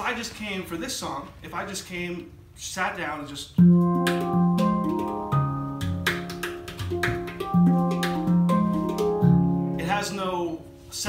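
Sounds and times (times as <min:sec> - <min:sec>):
handpan rhythmic tune: 0:03.6 - 0:10.3.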